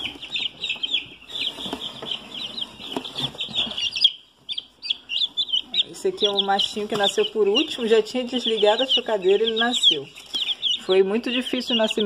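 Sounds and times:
chicks peeping: 0.0s - 12.0s.

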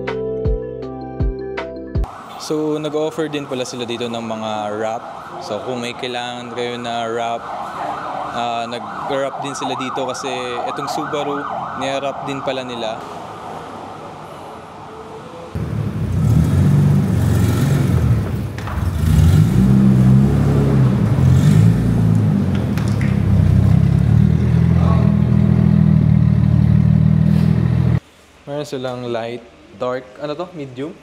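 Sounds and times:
car engine deep rumble: 15.6s - 28.0s.

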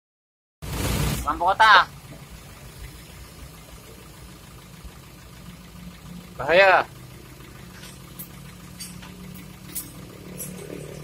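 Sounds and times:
car engine idling: 0.6s - 11.0s.

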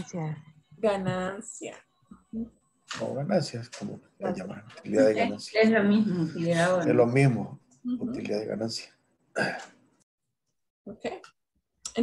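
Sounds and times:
person speaking: 2.9s - 8.6s.

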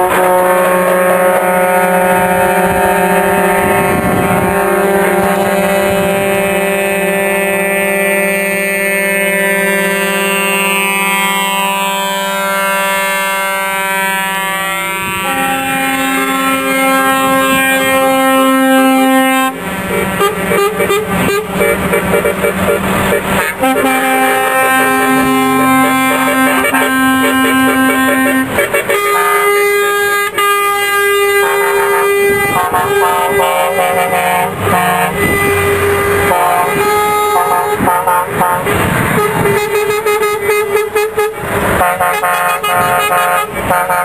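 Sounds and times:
truck air horns blaring: 0.0s - 44.0s.

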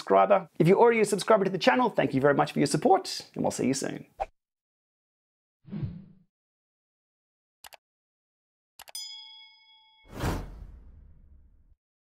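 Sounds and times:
bright bell ding: 9.0s - 10.1s.

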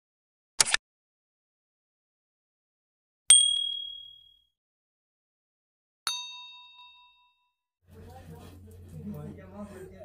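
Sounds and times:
bright bell ding: 3.3s - 4.4s, 6.1s - 7.5s.

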